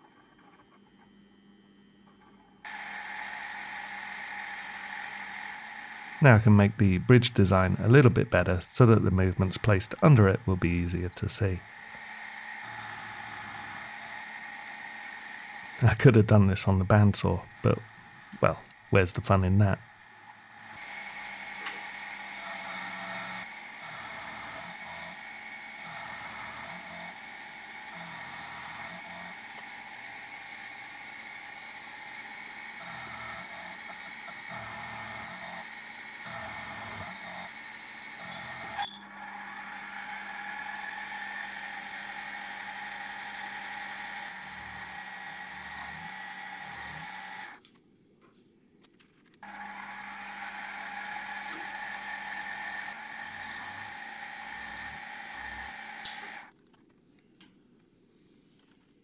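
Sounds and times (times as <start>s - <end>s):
milling machine motor whine: 0.0s - 47.6s, 49.4s - 56.5s.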